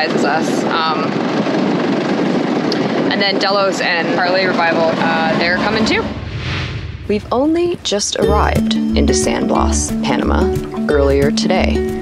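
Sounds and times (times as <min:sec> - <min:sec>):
wind buffeting microphone: 0:00.0 - 0:10.3.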